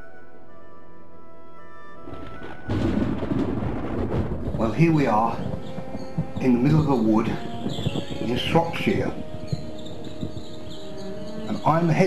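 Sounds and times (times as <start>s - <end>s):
music: 0.0s - 12.0s
wind buffeting microphone: 2.0s - 12.0s.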